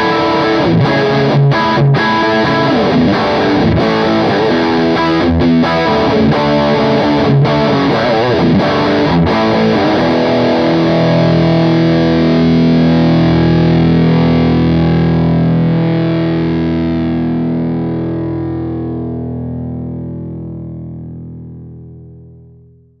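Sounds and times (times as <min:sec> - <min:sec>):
distorted electric guitar chord ringing: 0:00.0 - 0:23.0.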